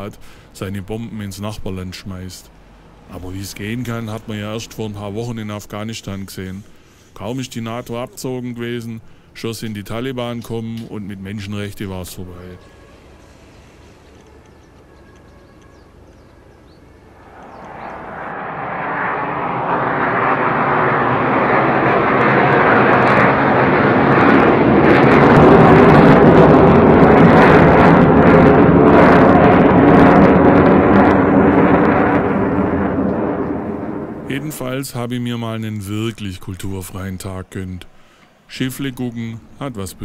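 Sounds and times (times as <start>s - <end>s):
fighter jet engine roar: 0.0s - 36.8s.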